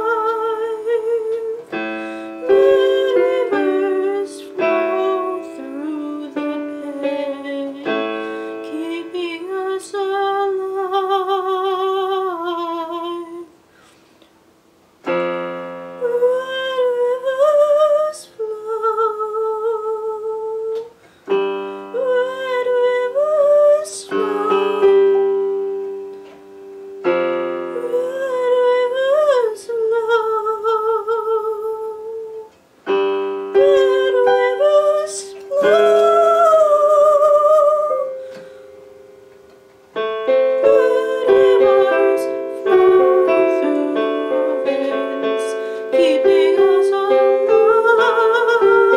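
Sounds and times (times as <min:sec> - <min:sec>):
electric piano chords: 0:00.0 - 0:13.5, 0:15.0 - 0:48.9
woman singing: 0:00.0 - 0:13.6, 0:16.0 - 0:25.8, 0:27.7 - 0:32.6, 0:33.4 - 0:38.5, 0:40.3 - 0:48.9
digital keyboard chord: 0:32.9 - 0:48.9.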